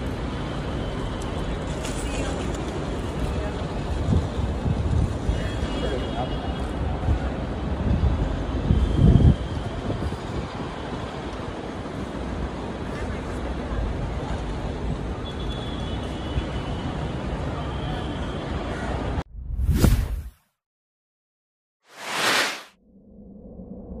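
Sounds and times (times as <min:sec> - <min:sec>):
traffic rumble: 0:00.0 - 0:08.6
low rumbling swells: 0:19.3 - 0:20.3.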